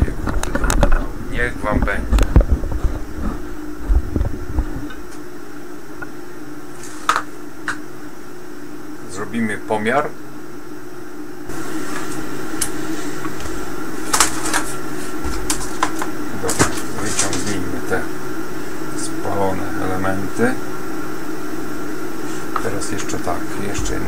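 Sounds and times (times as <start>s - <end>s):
steady hum: 0.0s - 24.0s.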